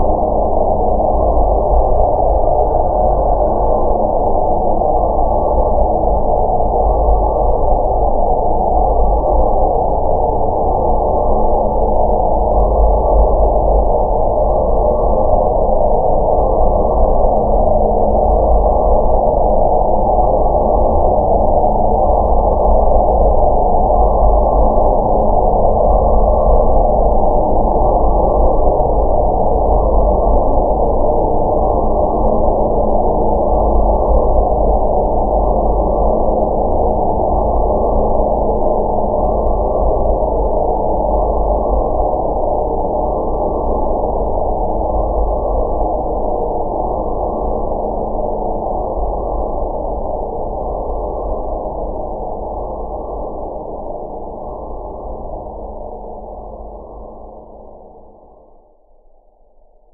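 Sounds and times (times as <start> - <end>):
dark ambient drone: 0.0 - 59.9
low held tone: 0.0 - 59.9.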